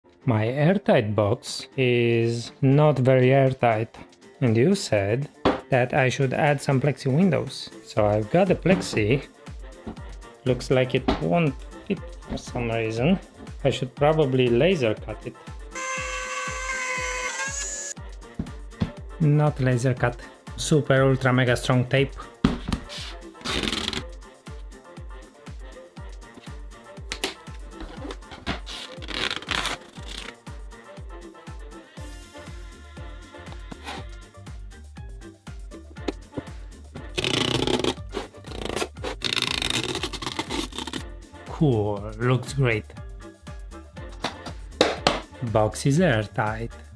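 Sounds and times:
background music with beat: 0:02.4 - 0:39.8, 0:40.8 - 0:46.9
power tool whine cutting plastic: 0:15.8 - 0:17.9.

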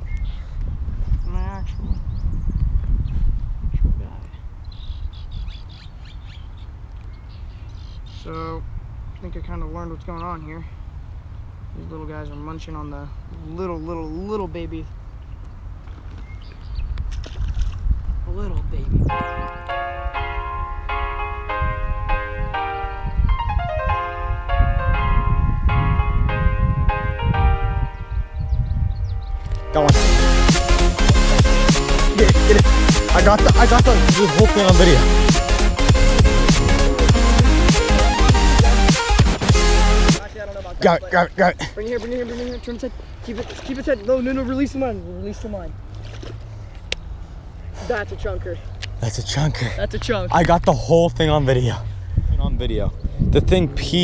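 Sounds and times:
small birds chirping: 0:00.0 - 0:17.7, 0:27.9 - 0:39.2, 0:40.1 - 0:45.8, 0:46.5 - 0:50.4
melody of sustained notes: 0:19.1 - 0:40.3
low rumbling noise: 0:50.2 - 0:54.0.

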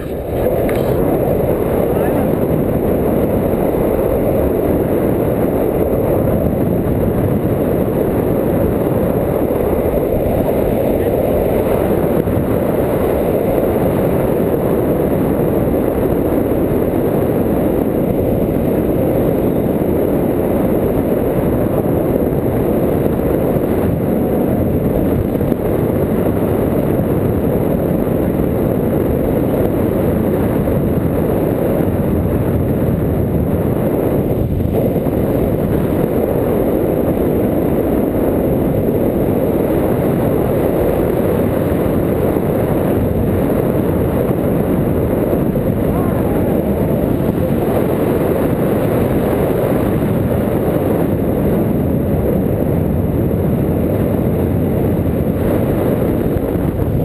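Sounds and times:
wind rumbling on microphone: 0:00.0 - 0:57.0.

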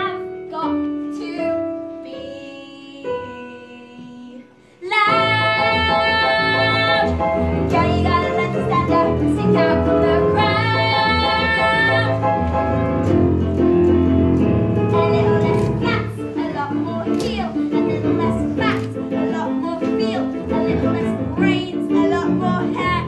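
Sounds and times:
loud backing track: 0:05.1 - 0:23.0.

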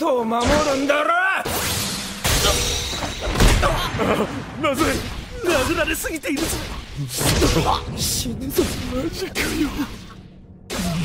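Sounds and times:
man speaking: 0:04.6 - 0:10.1.

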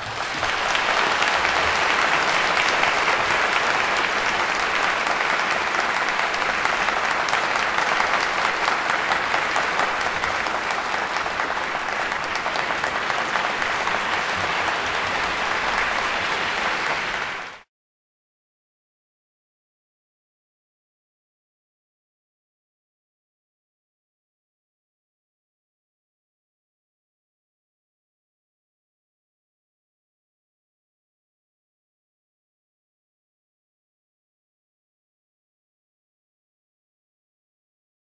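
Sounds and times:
audience applauding: 0:00.0 - 0:17.7.

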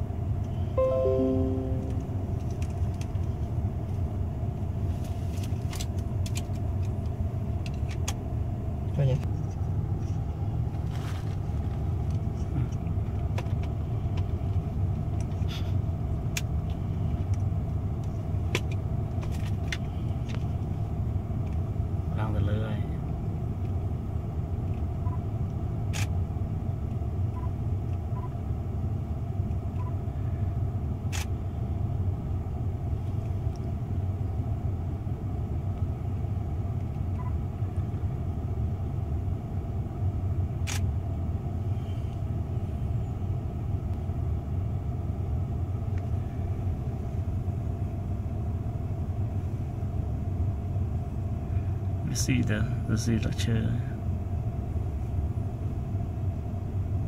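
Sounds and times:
vehicle engine rumbling: 0:00.0 - 0:57.0.

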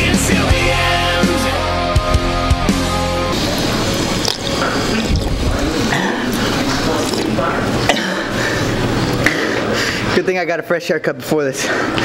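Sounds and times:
rock music: 0:00.0 - 0:03.4.

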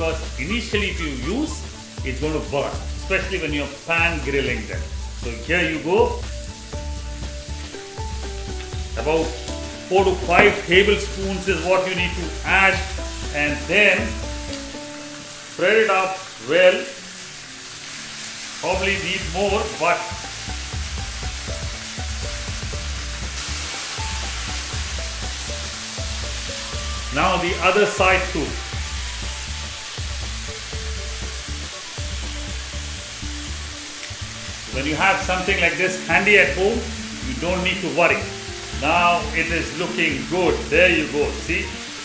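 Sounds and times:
chicken frying in oil: 0:00.0 - 0:42.0
soft background music: 0:00.0 - 0:42.0.

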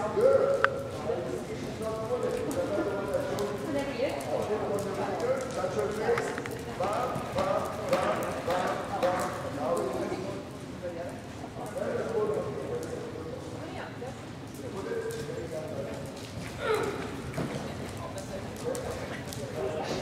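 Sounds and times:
horse hoofbeats on sand: 0:06.8 - 0:09.4.

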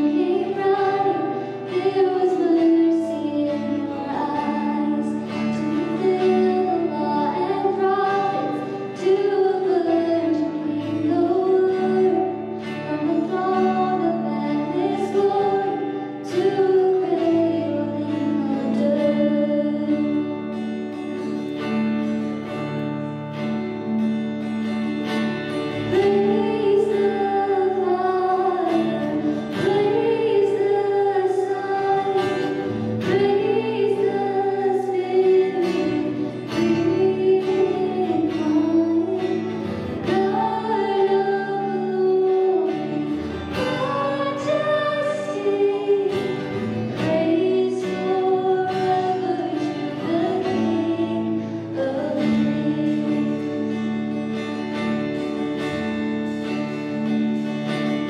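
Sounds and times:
strummed acoustic guitar: 0:00.0 - 0:58.0
woman singing lead melody: 0:00.0 - 0:58.0.

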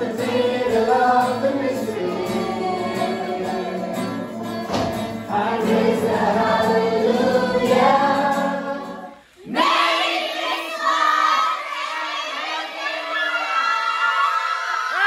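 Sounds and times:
choir song with bass line: 0:00.0 - 0:13.2
group singing and calling out: 0:00.0 - 0:13.8.

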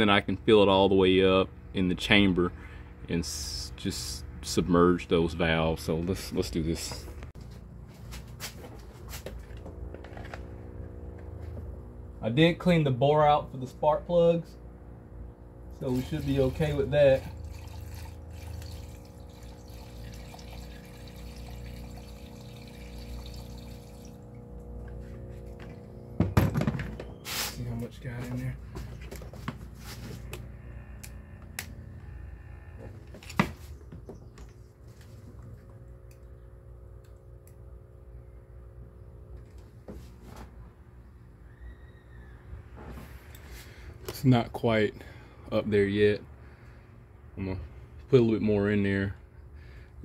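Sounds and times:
steady low hum: 0:00.0 - 0:50.0
liquid trickling through funnel: 0:15.8 - 0:24.9.

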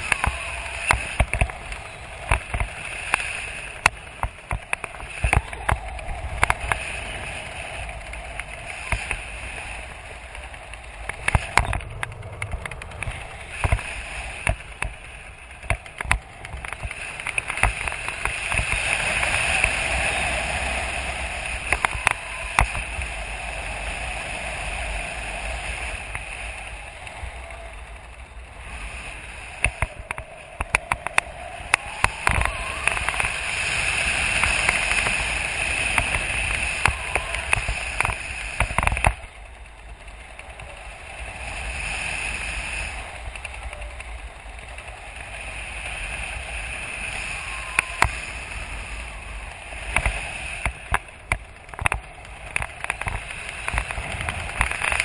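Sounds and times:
wind crackles and pops: 0:00.0 - 0:55.0
wind rushing over microphone: 0:00.0 - 0:55.0.

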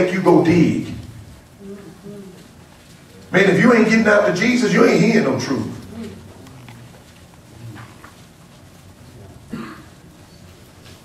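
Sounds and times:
faint voice: 0:01.6 - 0:02.5, 0:05.8 - 0:06.4.

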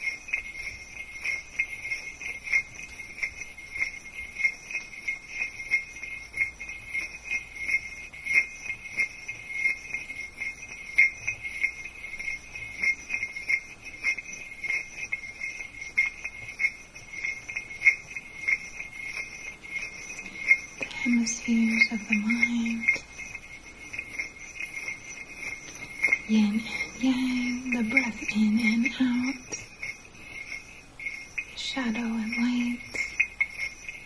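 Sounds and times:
crystals clicking and scraping: 0:00.0 - 0:34.0
high-pitched tone: 0:14.2 - 0:34.0.

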